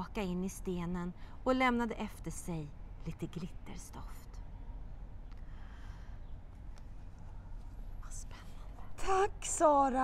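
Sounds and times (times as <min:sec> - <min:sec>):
steady low rumble: 0:00.0 - 0:10.0
person whispering: 0:08.0 - 0:09.0.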